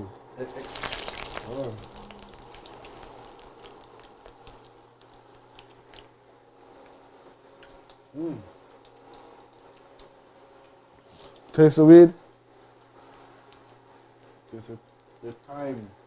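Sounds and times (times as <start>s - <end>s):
faint steady hum: 0.0s - 16.0s
man saying mmm: 1.4s - 2.6s, 8.2s - 8.5s.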